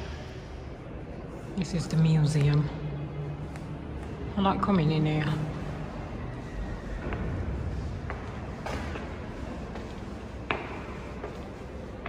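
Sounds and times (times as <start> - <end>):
footsteps on stone stairs: 8.0 - 12.0.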